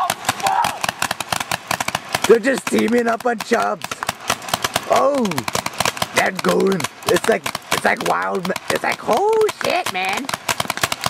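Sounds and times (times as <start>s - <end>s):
person shouting: 0.0s - 0.9s, 4.9s - 5.5s
paintball markers firing: 0.0s - 11.0s.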